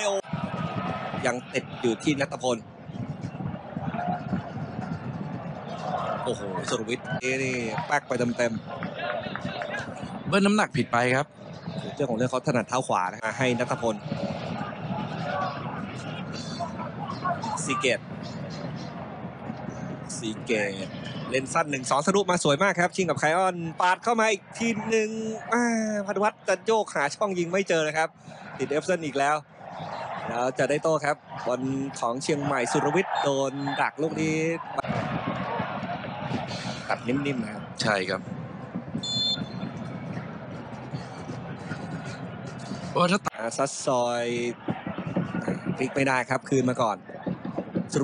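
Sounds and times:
football commentator speaking: 0.0s - 0.4s, 1.1s - 2.6s, 5.8s - 18.1s, 20.0s - 35.6s, 36.7s - 38.2s, 42.6s - 47.2s, 47.8s - 48.0s
stadium crowd: 0.0s - 48.0s
referee whistle blast: 39.0s - 39.6s.

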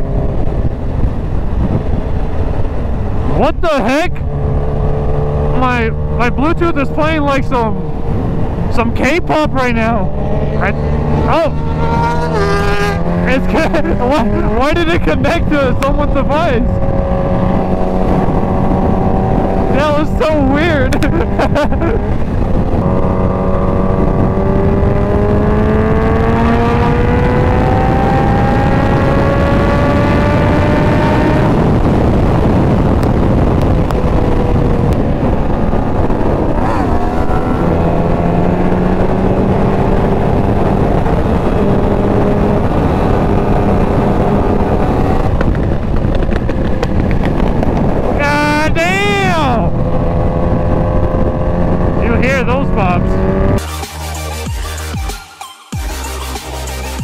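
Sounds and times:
heavy wind rush: 0.0s - 53.6s
motorcycle engine accelerating: 0.0s - 55.1s
wavering rising and falling tone: 6.8s - 20.4s.

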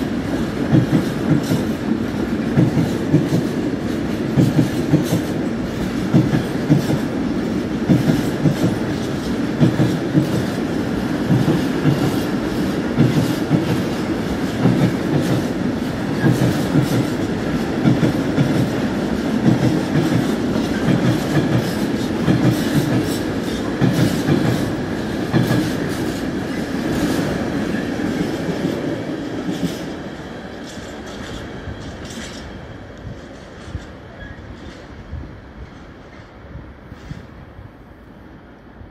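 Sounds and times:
train wheels clacking on rails: 0.0s - 37.3s
freight train rumbling: 0.0s - 38.9s
short knocks of train wagons: 16.1s - 17.2s, 19.4s - 26.2s.

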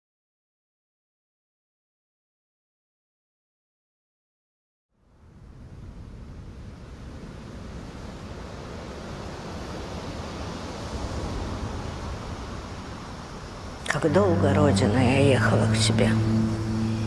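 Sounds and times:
rushing noise with low rumble: 10.6s - 17.0s.

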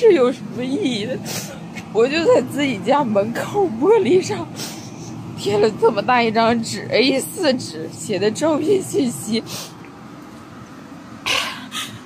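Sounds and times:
woman sobbing: 11.2s - 12.0s.

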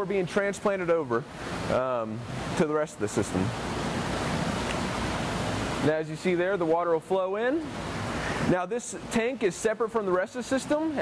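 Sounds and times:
steady rushing noise: 1.1s - 6.8s, 7.5s - 9.3s.

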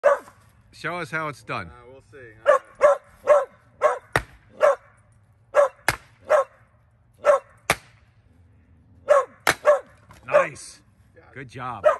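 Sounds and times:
dog barking: 0.0s - 0.3s, 2.4s - 6.6s, 7.2s - 7.6s, 9.0s - 10.6s
hammer cracking log: 4.1s - 4.4s, 5.8s - 6.1s, 7.7s - 8.0s, 9.4s - 9.8s.

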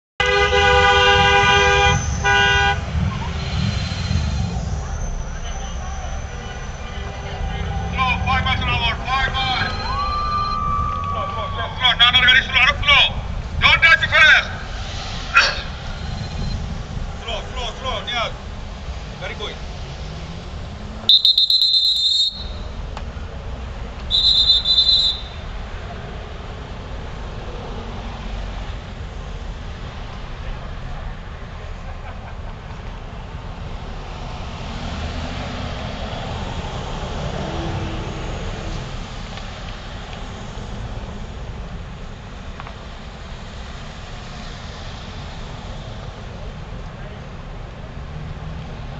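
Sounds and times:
car horn honking: 0.2s - 3.0s, 5.4s - 11.7s, 21.1s - 22.8s, 24.1s - 25.5s
road traffic rumble: 0.2s - 48.9s
trilling whistle blasts: 0.6s - 12.0s, 14.7s - 16.6s, 21.1s - 22.8s, 24.1s - 25.5s.

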